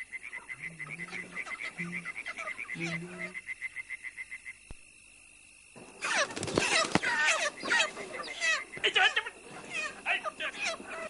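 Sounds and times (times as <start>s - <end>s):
low drawn-out animal calls: 0.3s - 3.4s.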